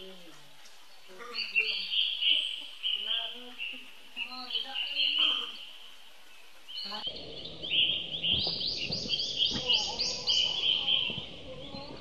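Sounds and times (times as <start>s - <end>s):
high steady drone: 7.1s - 11.6s.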